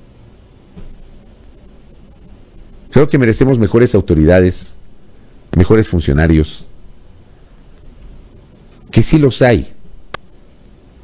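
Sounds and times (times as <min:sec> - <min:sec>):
microphone hiss: 0:00.0 - 0:11.0
man speaking: 0:02.9 - 0:04.9, 0:05.5 - 0:06.8, 0:08.8 - 0:10.0.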